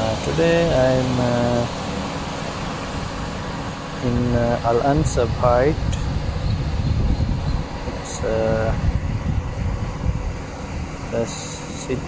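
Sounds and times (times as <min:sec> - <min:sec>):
wind on microphone: 0:04.0 - 0:12.0.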